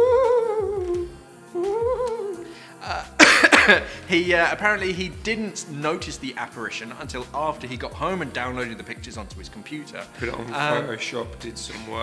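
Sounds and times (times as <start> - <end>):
person humming ghost-like: 0.0 - 3.2.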